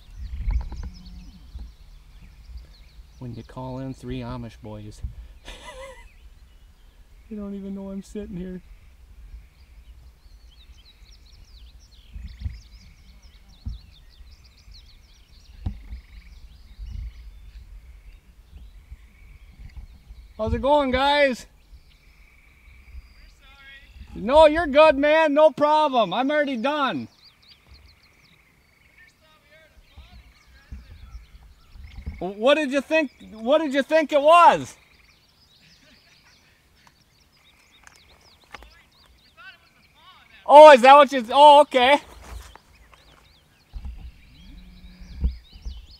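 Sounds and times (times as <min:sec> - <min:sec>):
low thumps: 0:00.0 - 0:05.3, 0:11.4 - 0:21.8, 0:29.8 - 0:32.4, 0:43.7 - 0:45.9
small birds chirping: 0:00.0 - 0:45.9
distant voice calling: 0:28.8 - 0:34.9, 0:38.5 - 0:42.2.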